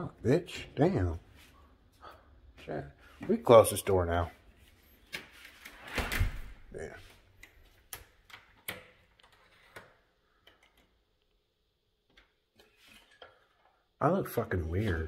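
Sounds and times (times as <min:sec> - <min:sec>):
door shutting with a thud: 0:05.9 - 0:06.6.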